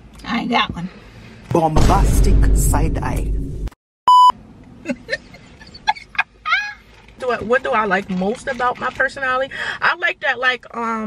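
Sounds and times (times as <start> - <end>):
woman laughing in squeaks: 4.9 - 7.0.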